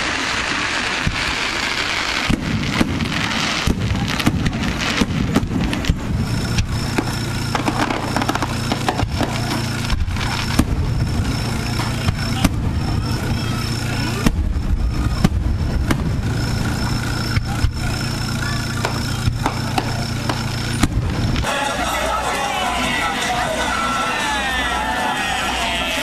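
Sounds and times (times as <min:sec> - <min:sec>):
fireworks bursting and crackling: 0:00.0 - 0:26.0
low engine hum: 0:02.3 - 0:24.9.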